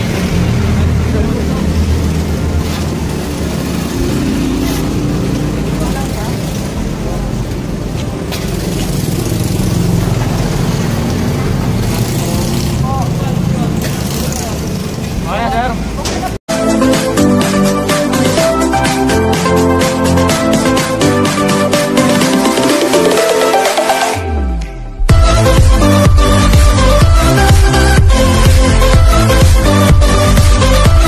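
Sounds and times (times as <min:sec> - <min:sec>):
vehicle engine running: 0:00.0 - 0:16.4
street noise: 0:00.0 - 0:31.0.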